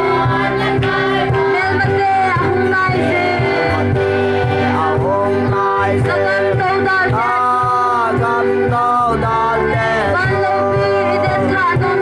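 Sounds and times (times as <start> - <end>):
low instrumental line: 0.0 - 12.0
men and women singing together: 0.0 - 12.0.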